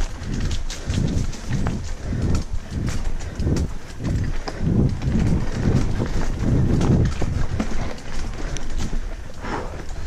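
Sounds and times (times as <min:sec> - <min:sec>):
bike knocking and rattling: 0:00.0 - 0:10.0
bike tyres over stones: 0:00.0 - 0:10.0
wind rumble on microphone: 0:00.0 - 0:10.0.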